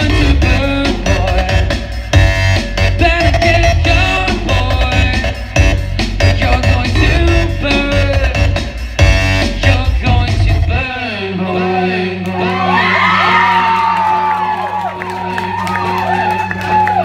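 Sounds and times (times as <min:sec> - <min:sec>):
crowd cheering and whooping: 0:12.4 - 0:17.0.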